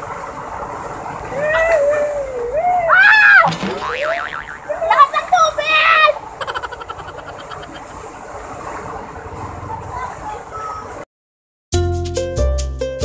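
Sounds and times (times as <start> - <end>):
people shrieking and yelling: 1.3 - 3.5
water splashing: 3.2 - 11.0.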